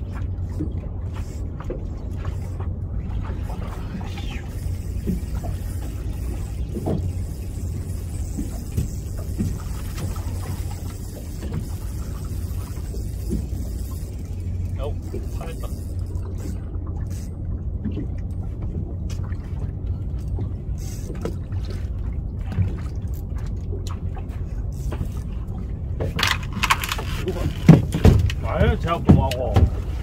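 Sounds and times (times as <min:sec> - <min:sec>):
outboard motor idling: 0:00.0 - 0:30.0
water noise: 0:00.0 - 0:30.0
wind: 0:00.0 - 0:30.0.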